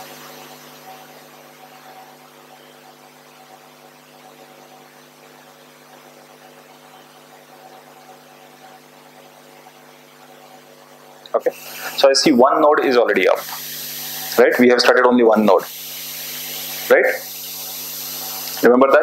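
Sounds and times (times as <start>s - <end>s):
electrical hum with whir and hiss: 0.0s - 19.0s.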